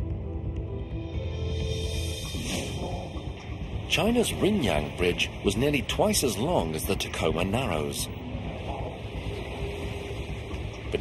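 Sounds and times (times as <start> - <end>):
road and wind noise: 2.2 - 11.0.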